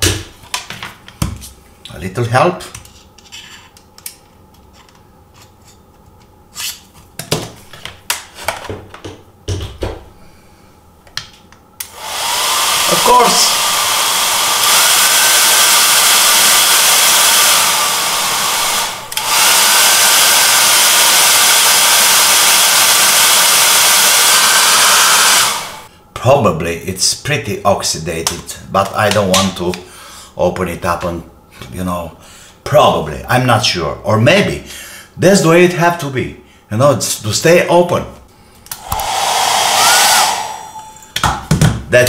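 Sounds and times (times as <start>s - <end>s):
hair dryer running with motor whine: 11.8s - 25.9s, 38.7s - 41.2s.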